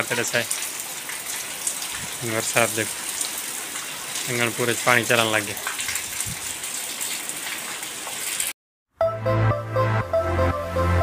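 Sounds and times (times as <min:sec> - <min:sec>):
heavy rain on standing water: 0:00.0 - 0:08.5.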